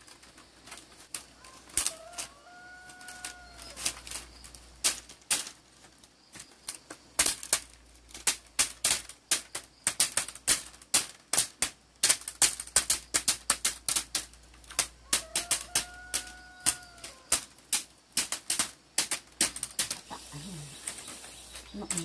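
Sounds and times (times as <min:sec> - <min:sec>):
bamboo strips clicking and clacking: 0:00.0 - 0:22.0.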